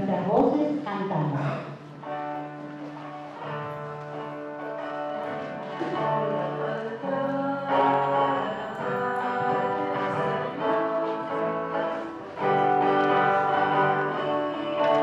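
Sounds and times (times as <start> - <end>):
hymn with instruments and singing: 1.4 - 15.0.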